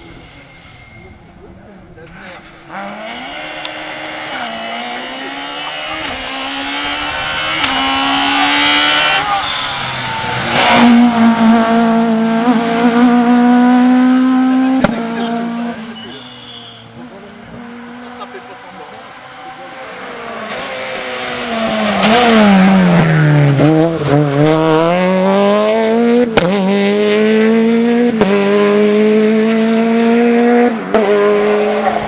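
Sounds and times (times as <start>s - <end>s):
rally car engine revving: 0.0s - 32.0s.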